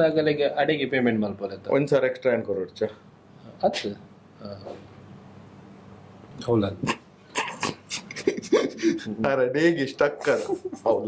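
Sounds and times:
man laughing in bursts: 0:06.9 - 0:09.3, 0:10.2 - 0:11.0.

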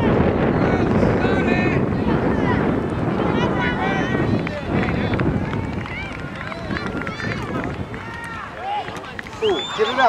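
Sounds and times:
people shouting and calling: 0:00.0 - 0:10.0
wind rumbling on microphone: 0:00.0 - 0:10.0.

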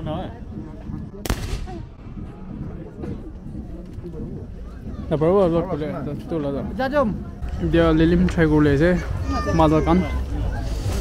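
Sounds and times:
gunshot: 0:01.2 - 0:02.0.

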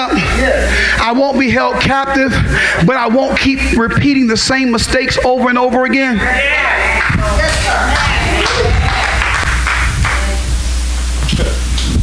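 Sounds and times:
electric keyboard sustained notes: 0:00.0 - 0:11.9
steady hiss: 0:06.5 - 0:12.0.

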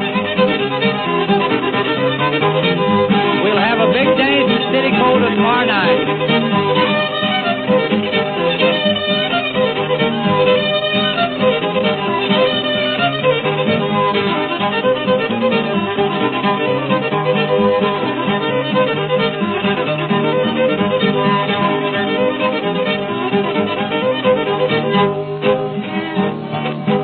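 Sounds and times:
fiddle playing dance tune: 0:00.0 - 0:27.0
guitar accompaniment: 0:00.0 - 0:27.0.

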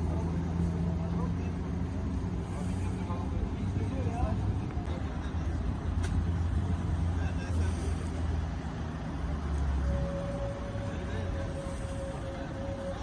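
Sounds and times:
vehicle engine rumble: 0:00.0 - 0:13.0
steady whining tone: 0:06.5 - 0:13.0.

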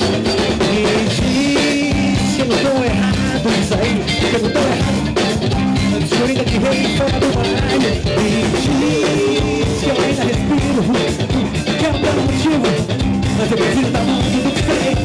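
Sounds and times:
person singing: 0:00.0 - 0:15.0
rock band playing live: 0:00.0 - 0:15.0.

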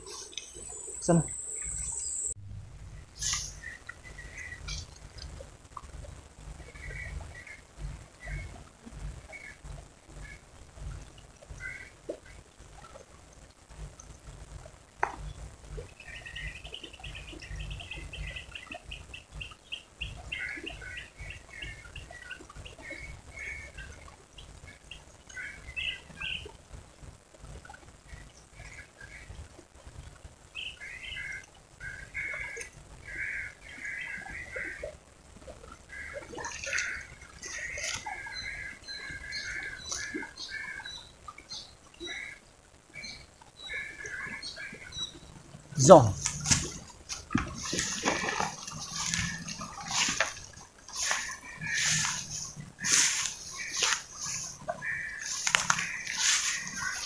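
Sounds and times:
small birds chirping: 0:00.0 - 0:02.4, 0:35.9 - 0:42.4, 0:47.6 - 0:57.0
low steady rumble: 0:00.6 - 0:11.7.

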